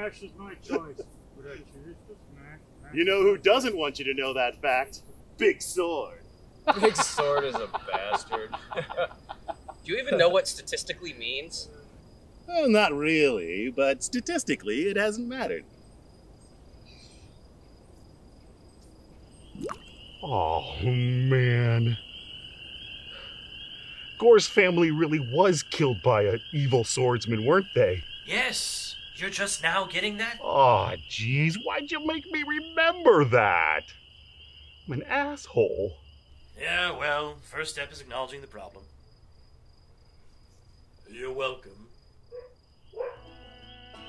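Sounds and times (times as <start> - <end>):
insects chirping at night: 0.0 - 44.0.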